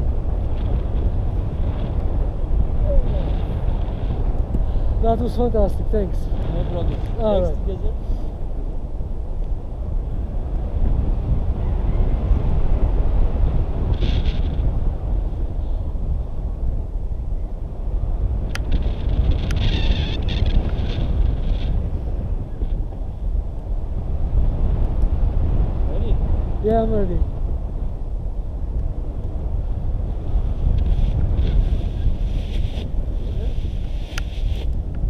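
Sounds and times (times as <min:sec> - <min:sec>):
wind rushing over microphone: 0:00.0 - 0:35.0.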